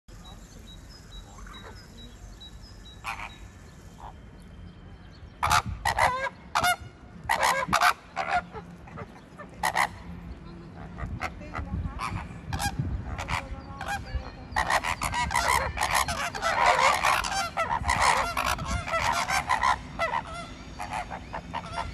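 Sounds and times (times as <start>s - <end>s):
flamingos honking: 3.0s - 4.4s, 5.4s - 21.9s.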